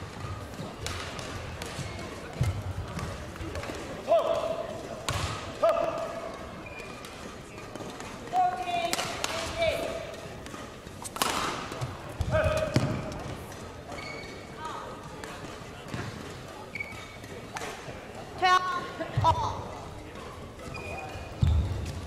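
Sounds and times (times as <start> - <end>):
shoes squeaking on court floor: 1.6 - 3.9, 5.8 - 8.9, 9.8 - 18.0, 19.7 - 22.0
racket striking shuttlecock: 10.4 - 13.3.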